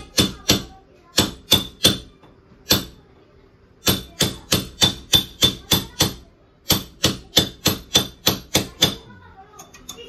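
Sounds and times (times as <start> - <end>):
hammer striking metal bracket: 0.0 - 3.0, 3.8 - 9.0.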